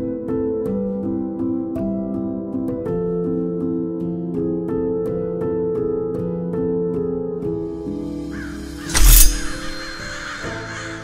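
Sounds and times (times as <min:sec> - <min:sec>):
soft piano music: 0:00.0 - 0:11.0
birds cawing: 0:08.2 - 0:11.0.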